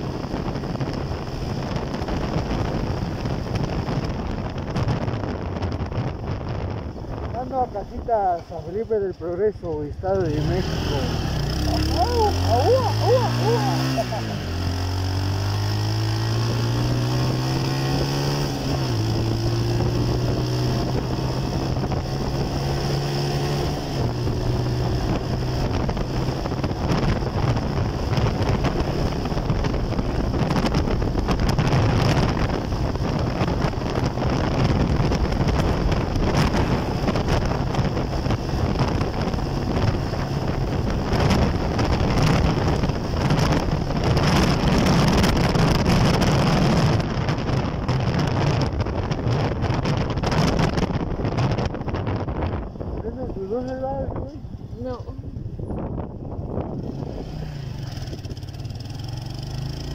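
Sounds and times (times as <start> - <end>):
road rush: 0.0 - 59.9
wind noise on microphone: 0.0 - 59.9
vehicle engine accelerating through gears: 10.1 - 52.6, 55.8 - 59.9.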